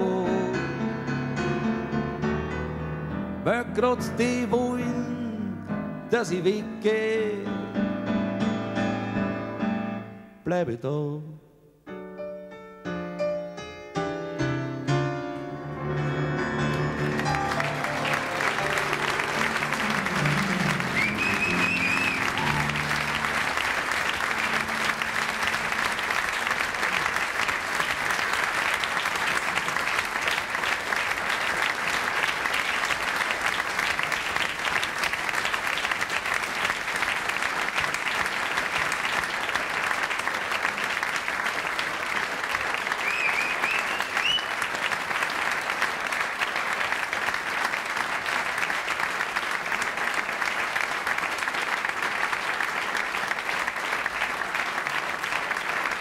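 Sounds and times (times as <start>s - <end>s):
audience applauding: 16.3s - 56.0s.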